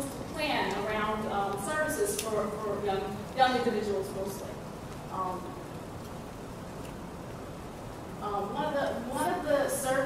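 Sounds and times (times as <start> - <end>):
woman speaking through microphone: 0.0 - 5.6, 8.2 - 10.0.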